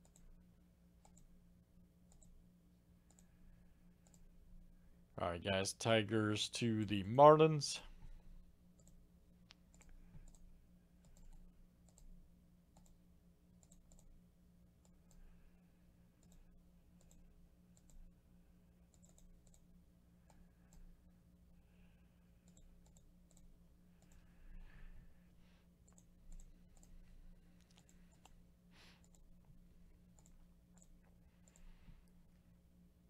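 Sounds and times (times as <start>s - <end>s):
low hum: 0.0s - 33.0s
faint computer mouse clicks: 1.0s - 1.3s, 3.0s - 3.3s, 4.0s - 4.3s, 8.8s - 12.1s, 13.6s - 14.1s, 16.2s - 18.0s, 18.9s - 19.6s, 30.1s - 32.2s.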